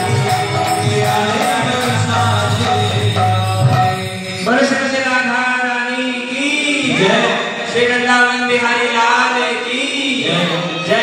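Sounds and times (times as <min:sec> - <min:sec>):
musical accompaniment: 0:00.0 - 0:05.1
devotional mantra chanting: 0:00.0 - 0:11.0.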